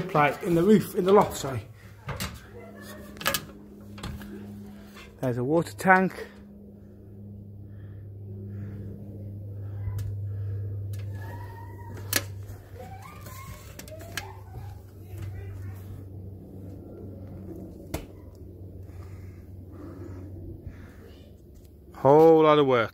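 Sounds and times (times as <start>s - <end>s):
steady low hum: 0.0s - 22.9s.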